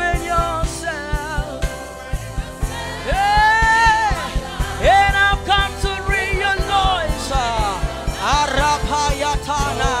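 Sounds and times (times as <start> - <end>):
gospel singing: 0.0 - 10.0
steady drum beat: 0.0 - 10.0.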